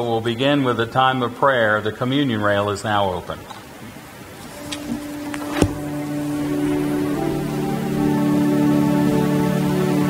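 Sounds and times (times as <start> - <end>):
organ chords: 4.4 - 10.0.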